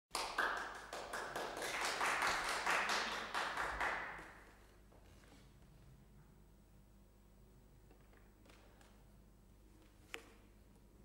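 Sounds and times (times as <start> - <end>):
small audience applauding: 0.1 - 4.6.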